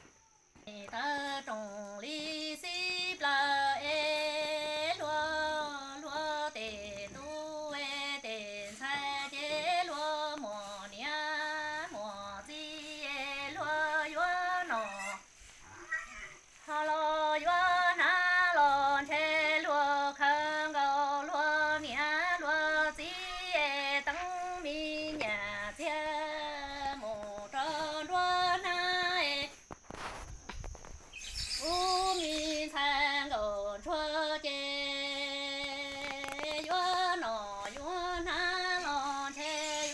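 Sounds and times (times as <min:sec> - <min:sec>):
woman singing unaccompanied: 0:00.0 - 0:15.6, 0:16.4 - 0:29.8, 0:31.4 - 0:39.9.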